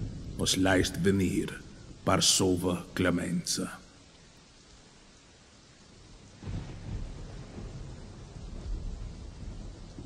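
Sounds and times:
low rumbling noise: 0:00.0 - 0:04.1
faint steady hiss: 0:00.0 - 0:10.0.

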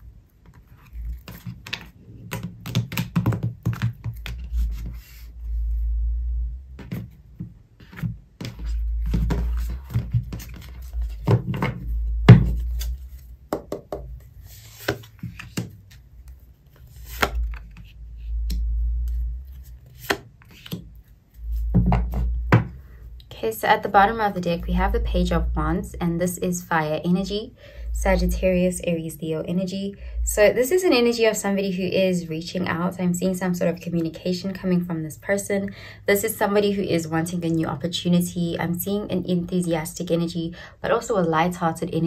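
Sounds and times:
cards shuffling and snapping: 0:00.5 - 0:05.0, 0:12.4 - 0:13.8, 0:14.6 - 0:17.9, 0:18.5 - 0:20.9
cards tapping on tabletop: 0:01.6 - 0:04.5, 0:13.5 - 0:14.1
low rumble: 0:05.1 - 0:06.9, 0:08.5 - 0:13.3, 0:17.3 - 0:19.9, 0:21.4 - 0:30.6.

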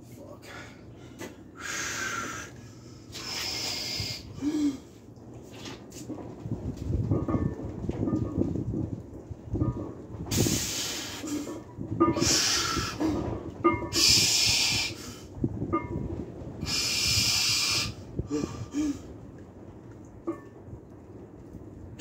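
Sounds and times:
man breathing hard: 0:00.4 - 0:05.0, 0:16.6 - 0:19.1.

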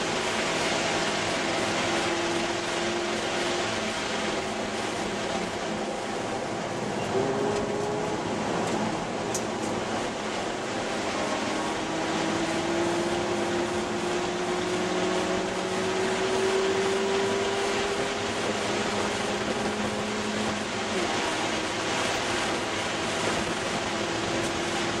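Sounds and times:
car engine running hard: 0:00.0 - 0:25.0
wind and road noise: 0:00.0 - 0:25.0.

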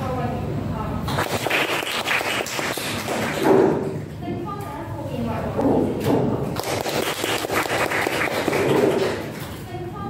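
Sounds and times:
people clapping: 0:01.1 - 0:03.7, 0:06.6 - 0:09.6.

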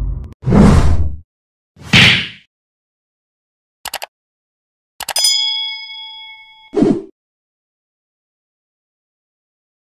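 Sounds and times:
mouse clicks: 0:03.9 - 0:04.1
notification bell ding: 0:05.1 - 0:06.8.

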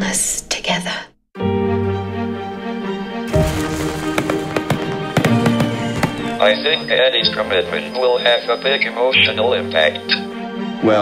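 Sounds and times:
background music: 0:01.4 - 0:11.0
fireworks bursting and crackling: 0:03.3 - 0:06.9.

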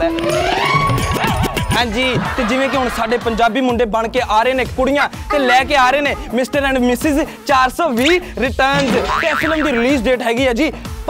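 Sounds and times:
man talking animatedly: 0:01.8 - 0:10.8
springy boing sound effect: 0:08.8 - 0:09.8.

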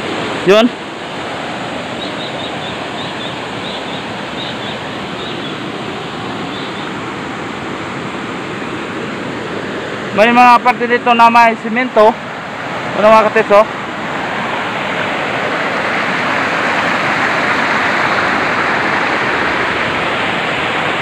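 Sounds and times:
river water rushing over rocks: 0:00.0 - 0:21.0.

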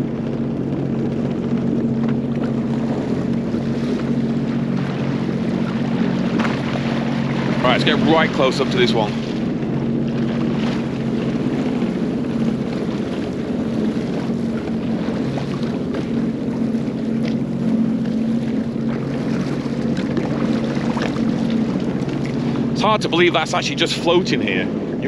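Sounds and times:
water washing: 0:00.0 - 0:25.0
watercraft engine idling: 0:00.0 - 0:25.0.

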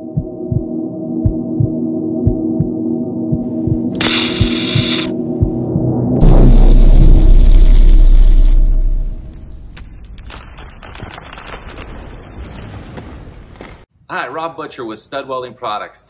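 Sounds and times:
deep rumbling boom: 0:03.3 - 0:09.8
crackles of sparks: 0:04.0 - 0:05.1, 0:06.2 - 0:13.8.

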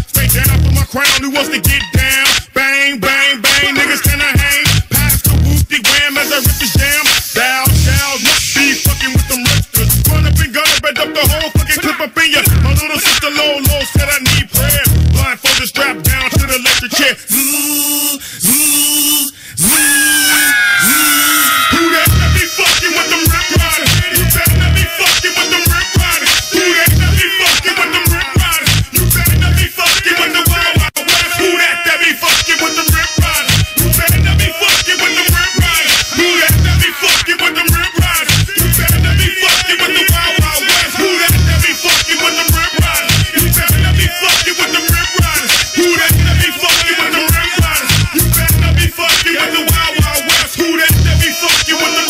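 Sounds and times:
deep bass notes: 0:00.0 - 0:00.9, 0:04.6 - 0:05.8, 0:07.7 - 0:08.1, 0:09.5 - 0:10.5, 0:12.5 - 0:12.8, 0:14.1 - 0:15.3, 0:22.1 - 0:22.5, 0:23.3 - 0:25.0, 0:26.9 - 0:27.3, 0:28.4 - 0:29.7, 0:33.4 - 0:34.5, 0:36.5 - 0:36.9, 0:38.2 - 0:39.3, 0:41.3 - 0:41.7, 0:43.1 - 0:44.1, 0:46.1 - 0:46.5, 0:47.8 - 0:48.9, 0:50.9 - 0:51.3
rapping over a beat: 0:00.0 - 0:52.0
kick drum: 0:04.1 - 0:04.6, 0:06.5 - 0:06.9, 0:11.3 - 0:11.8, 0:13.7 - 0:14.2, 0:28.1 - 0:28.6, 0:37.7 - 0:38.2, 0:40.1 - 0:40.6, 0:47.3 - 0:47.8, 0:49.7 - 0:50.2.

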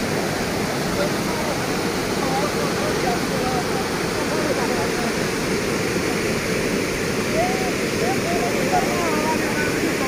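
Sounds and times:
floodwater rushing: 0:00.0 - 0:10.0.

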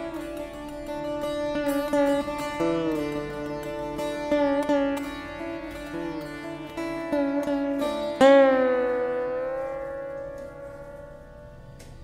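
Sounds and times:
slide guitar note ringing: 0:00.0 - 0:12.0
strings sounding beneath: 0:00.0 - 0:12.0.

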